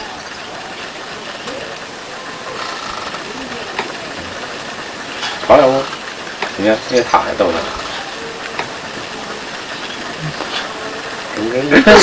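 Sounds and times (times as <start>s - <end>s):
faint voices murmuring: 0.0s - 12.0s
steady background hiss: 0.0s - 12.0s.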